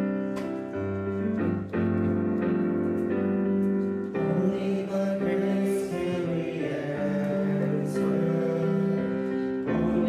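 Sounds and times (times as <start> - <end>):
digital piano hymn chords: 0.0 - 10.0.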